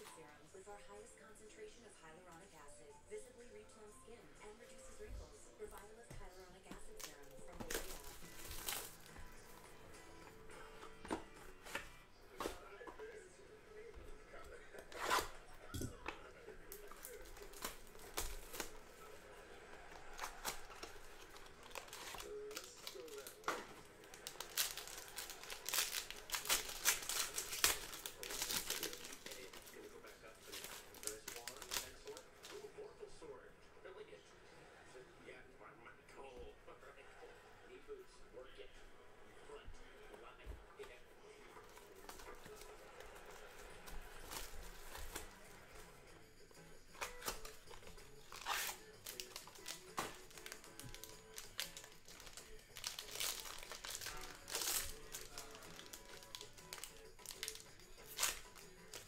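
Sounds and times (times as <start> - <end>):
cardboard box crinkling and tearing: 7.0 - 9.1, 20.0 - 29.8, 30.4 - 32.2, 48.2 - 59.0.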